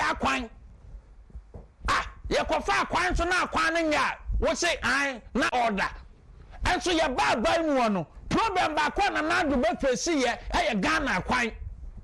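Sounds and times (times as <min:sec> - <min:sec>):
man shouting emphatically: 0:00.0 - 0:00.5, 0:01.8 - 0:06.0, 0:06.6 - 0:11.6.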